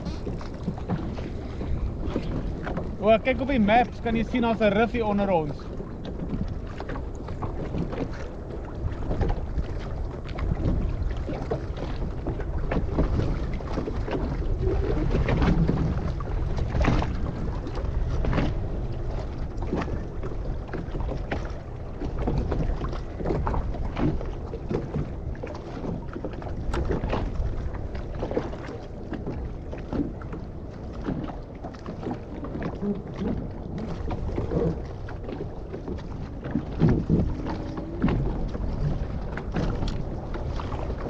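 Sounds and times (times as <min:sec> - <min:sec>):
water splashing and slapping: 0:00.0 - 0:41.0
wind rumbling on microphone: 0:00.0 - 0:41.0.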